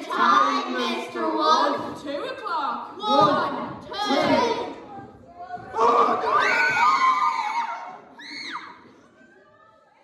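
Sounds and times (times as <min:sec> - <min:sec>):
people screaming together: 0:05.8 - 0:08.8.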